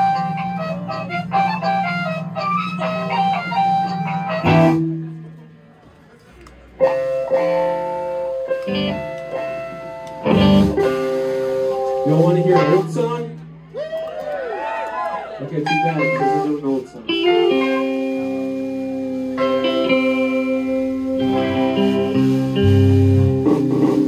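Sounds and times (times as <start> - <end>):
electric guitar noodling: 0.0 - 5.6, 6.8 - 13.6, 15.5 - 24.0.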